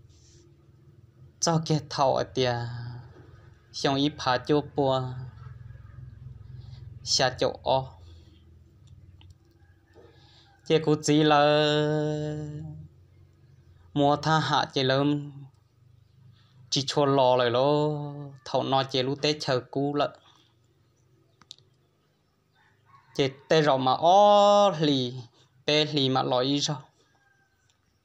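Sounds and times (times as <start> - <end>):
faint low hum: 0.0 - 28.0
man speaking: 1.4 - 5.4, 7.0 - 8.0, 10.7 - 12.9, 14.0 - 15.5, 16.7 - 20.2, 23.2 - 26.9.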